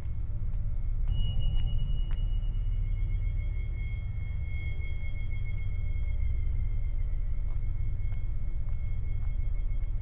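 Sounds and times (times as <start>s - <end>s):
deep drone: 0.0s - 10.0s
high sustained ringing tone: 0.7s - 10.0s.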